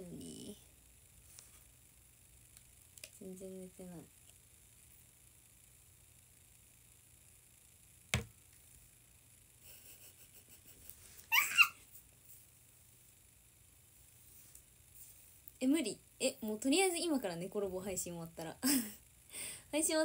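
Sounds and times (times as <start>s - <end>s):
sharp knock: 8.1s - 8.3s
young woman laughing: 9.7s - 11.8s, 18.6s - 19.0s.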